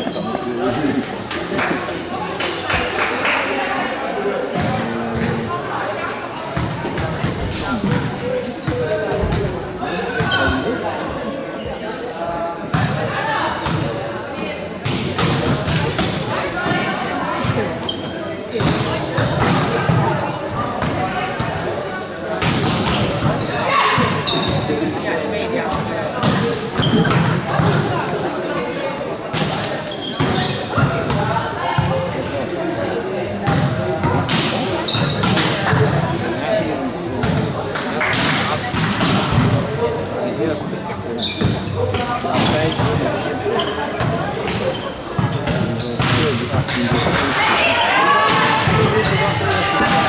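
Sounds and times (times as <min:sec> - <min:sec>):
people calling and talking: 0:00.0 - 0:50.0.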